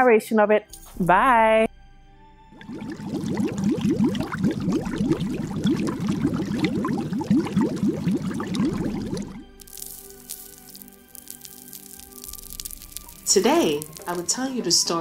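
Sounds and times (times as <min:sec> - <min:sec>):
music: 0:00.0 - 0:15.0
liquid bubbling and dripping effect: 0:02.6 - 0:14.3.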